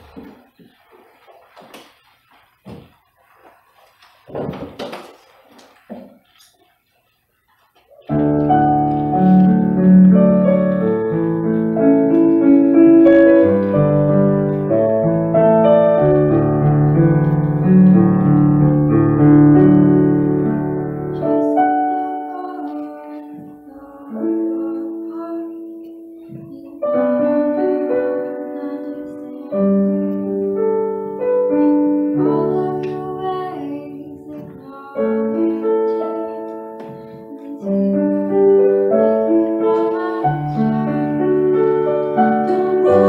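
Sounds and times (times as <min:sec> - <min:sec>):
small shuffles: 0:00.0 - 0:12.4
digital piano chords: 0:07.8 - 0:43.0.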